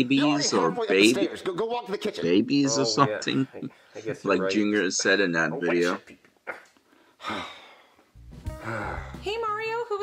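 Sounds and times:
breathy sigh: 7.0s - 9.3s
background music: 8.1s - 10.0s.

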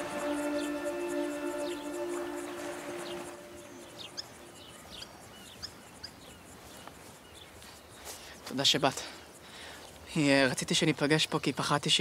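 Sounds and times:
soft sustained music notes: 0.0s - 5.4s
bird chirps: 0.0s - 8.1s.

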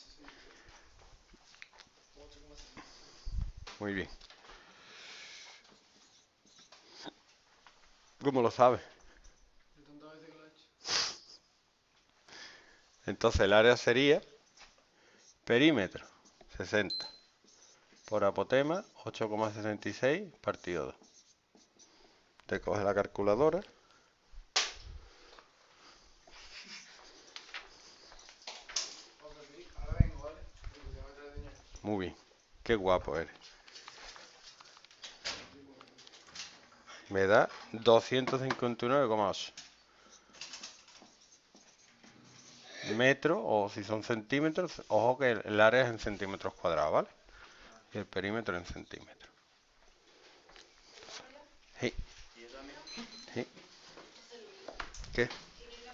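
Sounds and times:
soft rustling: 17.4s - 38.1s, 48.6s - 55.9s.

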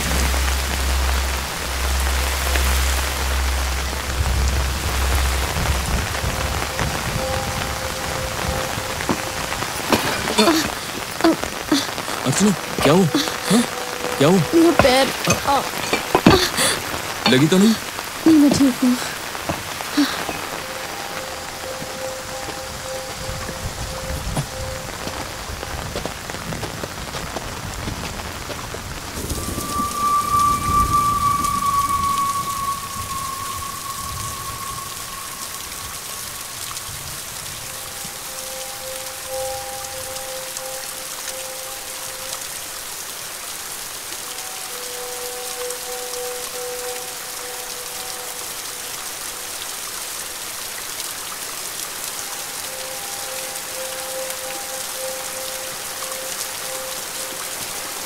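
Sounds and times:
heavy rain falling: 0.0s - 58.0s.

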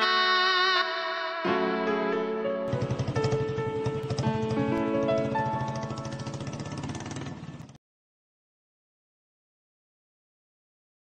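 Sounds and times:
background music: 0.0s - 7.4s
motorcycle engine idling: 2.7s - 7.8s.

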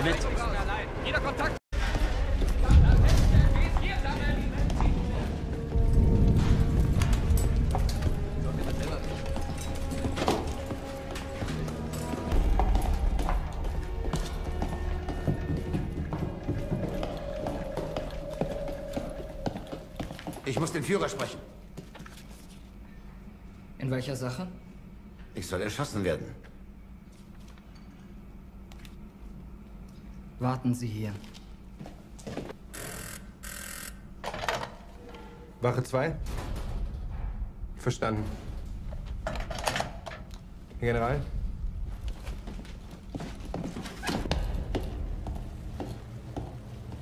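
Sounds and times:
low sustained music score: 0.0s - 21.2s
deep rumble: 1.8s - 9.9s
booted footsteps on concrete: 9.0s - 20.8s
telephone bell ringing: 32.8s - 34.0s.

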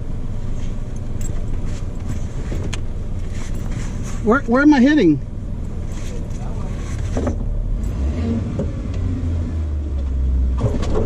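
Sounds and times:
engine idling low rumble: 0.0s - 11.0s.

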